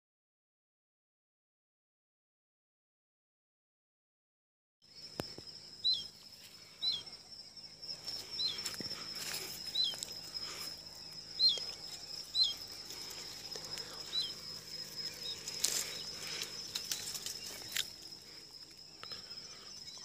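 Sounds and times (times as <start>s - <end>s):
high-pitched insect drone: 4.8s - 20.0s
leaves and twigs rustling: 7.9s - 20.0s.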